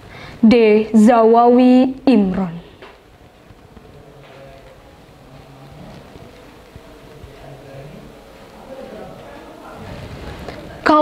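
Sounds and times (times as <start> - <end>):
faint low hum: 0.0 - 11.0
low rumbling background noise: 0.0 - 11.0.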